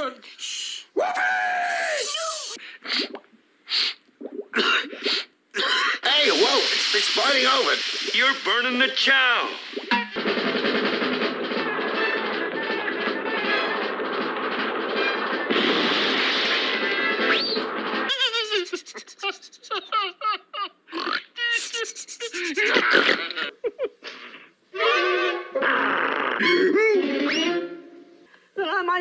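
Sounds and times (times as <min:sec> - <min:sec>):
busy film music: 0:09.9 - 0:18.1
cartoon characters' wordless vocals: 0:26.6 - 0:27.9.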